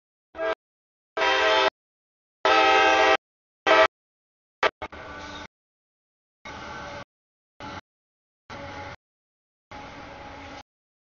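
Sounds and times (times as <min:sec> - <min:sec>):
locomotive air horn blasts: 0:00.3 - 0:00.6, 0:01.2 - 0:01.8, 0:02.4 - 0:03.9.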